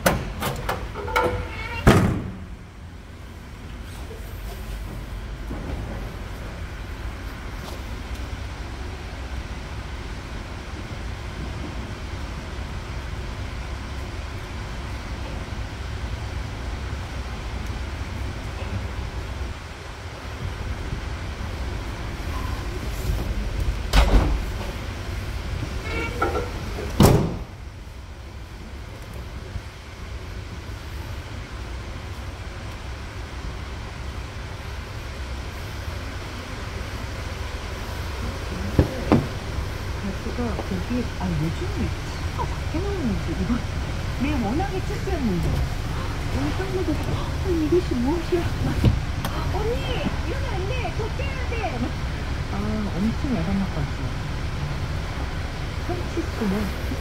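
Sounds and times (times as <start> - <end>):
steady low rumble: 0.0 - 57.0
tailgate and hatch bangs: 1.8 - 2.5, 27.0 - 27.5.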